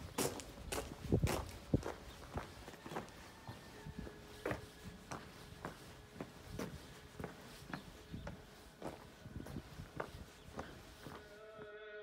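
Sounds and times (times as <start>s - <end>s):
footsteps on gravel: 0.0s - 11.7s.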